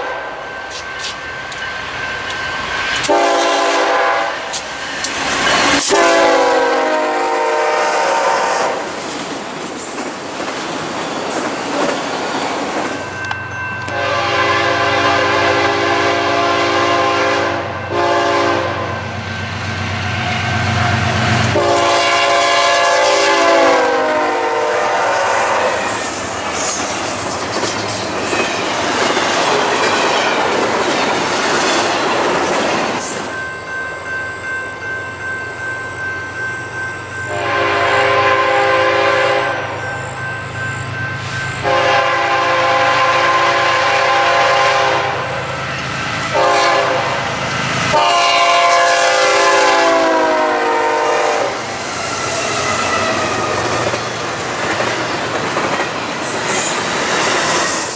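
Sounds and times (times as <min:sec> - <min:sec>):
locomotive air horn: 0:00.0 - 0:00.4, 0:03.0 - 0:04.6, 0:05.8 - 0:08.9, 0:13.9 - 0:19.0, 0:21.4 - 0:26.0, 0:37.3 - 0:39.8, 0:41.6 - 0:45.5, 0:46.3 - 0:47.2, 0:47.9 - 0:51.7
freight train wheels clacking: 0:00.0 - 0:07.4, 0:08.7 - 0:24.4, 0:25.0 - 0:35.6, 0:45.4 - 0:57.9.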